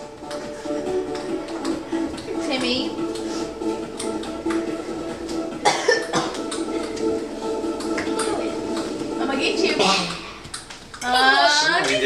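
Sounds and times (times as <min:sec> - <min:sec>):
music from a television: 0:00.0 - 0:12.0
person coughing: 0:05.6 - 0:06.4, 0:09.8 - 0:10.2.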